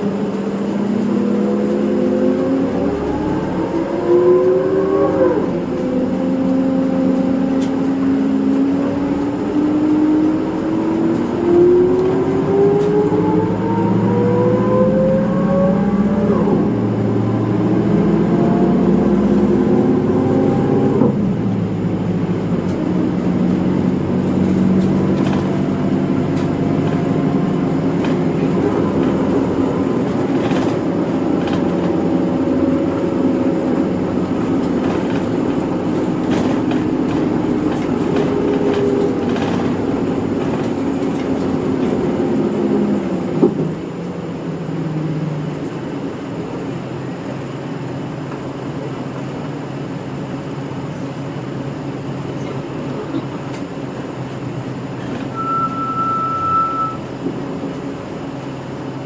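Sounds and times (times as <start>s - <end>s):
bus diesel engine accelerating: 0.0s - 59.0s.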